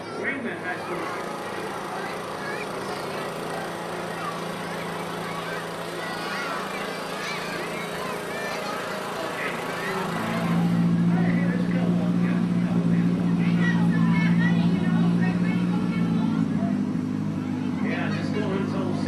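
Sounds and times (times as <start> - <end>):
crowd chatter: 0.0 - 19.0
vehicle engine droning: 0.0 - 19.0.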